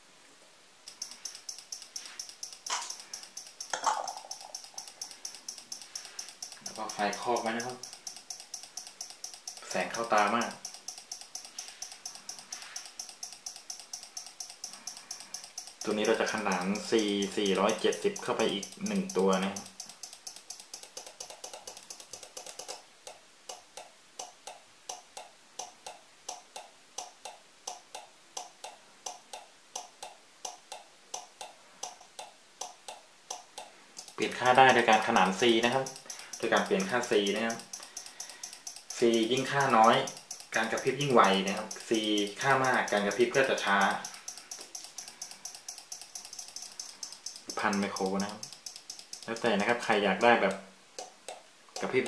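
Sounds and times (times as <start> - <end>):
relay clicking: 0.8 - 29.9, 32.6 - 52.0.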